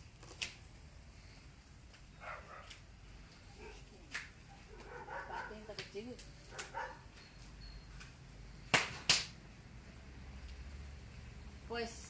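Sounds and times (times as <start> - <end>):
sharp smacks: 8.6 - 9.4.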